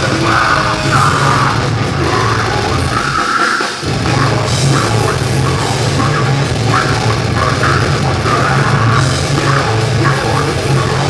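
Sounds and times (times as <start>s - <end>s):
live metal band playing: 0.0s - 11.0s.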